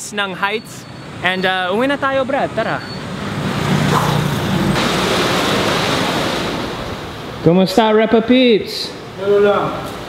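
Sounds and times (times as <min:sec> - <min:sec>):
road traffic rushing past: 0:00.0 - 0:10.0.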